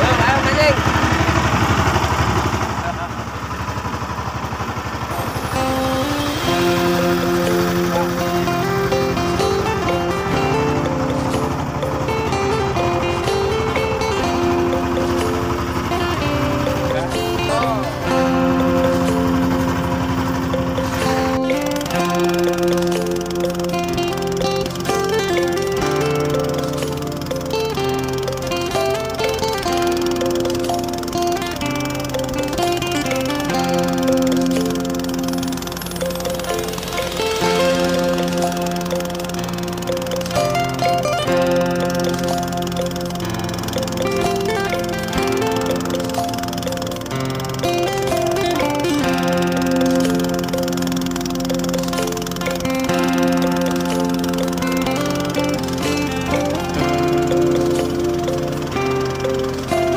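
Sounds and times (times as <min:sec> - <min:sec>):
boat engine running: 0:00.0 - 0:59.9
slow background music: 0:05.1 - 0:59.9.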